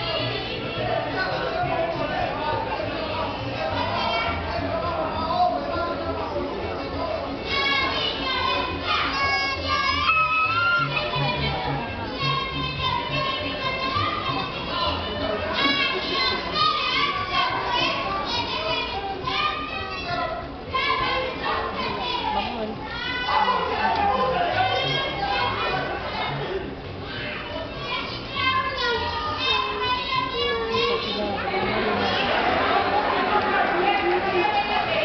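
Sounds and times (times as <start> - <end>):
lively music: 0.0 - 35.0
voices talking: 0.0 - 35.0.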